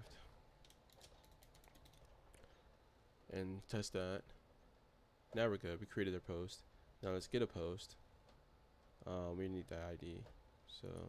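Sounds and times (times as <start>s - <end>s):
faint keyboard typing: 0.1s - 2.6s.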